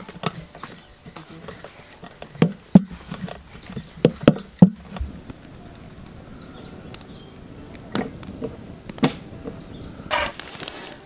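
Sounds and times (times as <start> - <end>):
irregular clicks and knocks: 0.0 - 5.9.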